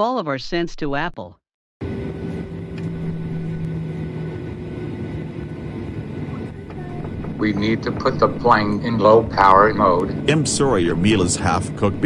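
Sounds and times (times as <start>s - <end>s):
airliner engine drone: 1.8s - 12.0s
low hum: 1.8s - 12.0s.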